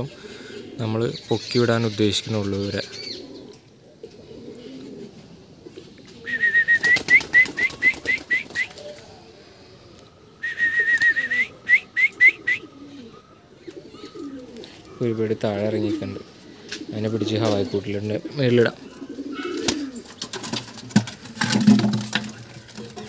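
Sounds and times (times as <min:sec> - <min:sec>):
pigeons cooing: 0:00.0 - 0:23.0.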